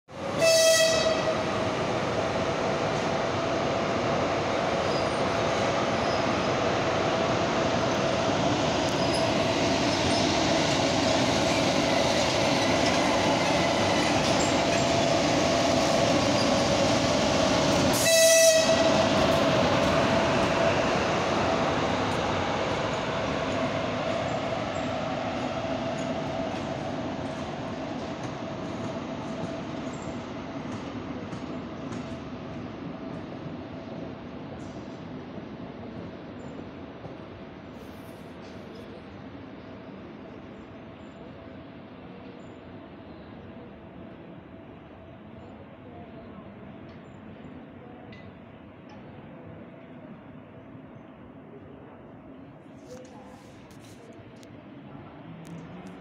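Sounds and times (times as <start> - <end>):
train rolling with whine: 0.1 - 45.5, 52.4 - 56.0
locomotive horn blasts: 0.4 - 1.3, 18.0 - 18.9.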